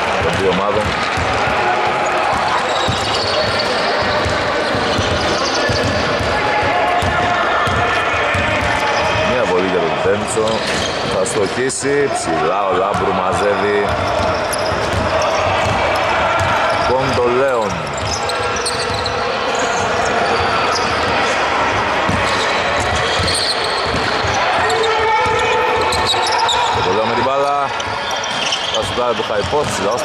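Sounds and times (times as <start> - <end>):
sneakers squeaking on wooden floor: 0.0 - 11.4, 12.9 - 30.0
voices in background: 0.0 - 30.0.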